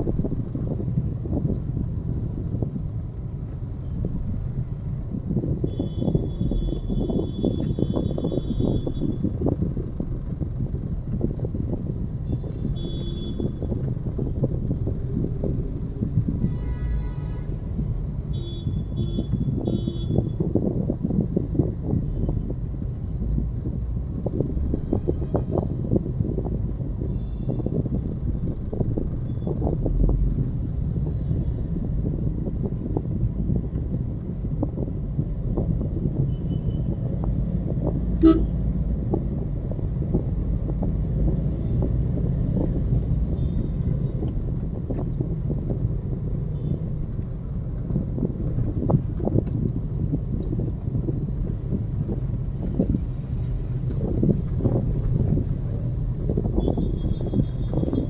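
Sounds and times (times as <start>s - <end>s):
car engine and tyres rumbling: 0.0s - 58.0s
car horns tooting: 38.2s - 38.5s.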